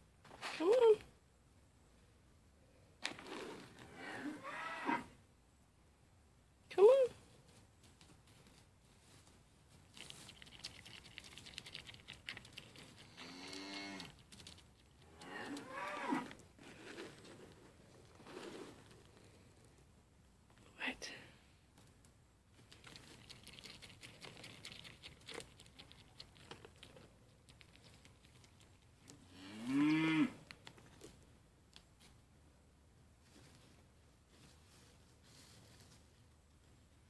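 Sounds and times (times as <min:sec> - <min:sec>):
grain crunching as eaten: 0:03.0 - 0:04.0, 0:09.7 - 0:19.9, 0:22.6 - 0:31.3.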